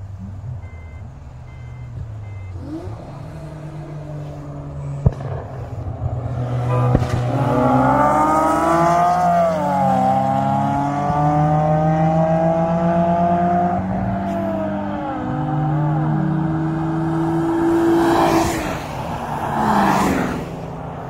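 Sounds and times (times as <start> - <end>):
car engine at full throttle: 0.0 - 21.0.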